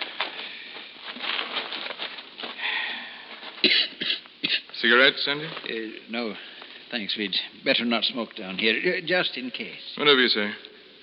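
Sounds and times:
man clearing his throat: 3.6s - 4.7s
man coughing: 3.6s - 4.7s.

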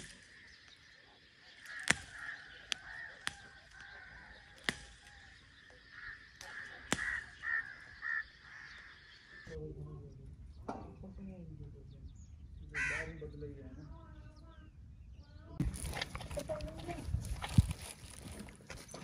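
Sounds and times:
birds calling: 0.0s - 19.0s
twigs snapping and rustling: 1.6s - 7.6s, 15.6s - 19.0s.

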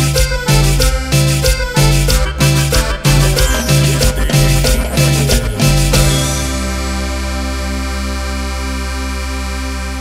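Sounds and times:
deep bass note: 0.8s - 10.0s
sustained synthesizer chord: 2.2s - 10.0s.

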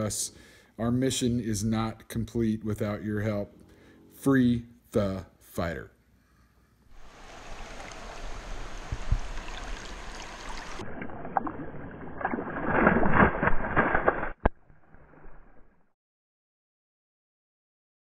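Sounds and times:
river water rushing and splashing: 7.0s - 13.8s.

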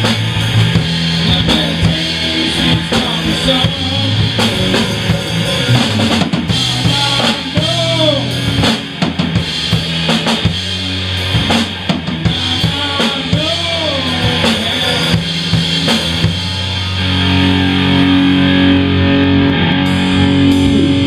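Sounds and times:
distorted electric guitars: 0.0s - 21.0s
live rock band playing: 0.0s - 21.0s.

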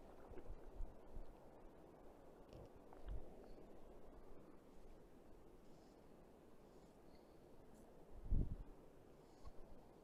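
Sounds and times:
flowing river water: 0.0s - 5.6s.

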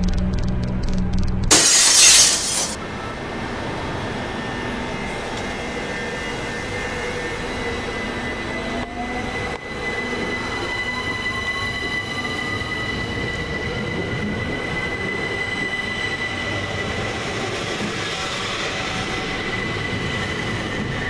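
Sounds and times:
train wheels rumbling on rails: 4.9s - 21.0s.

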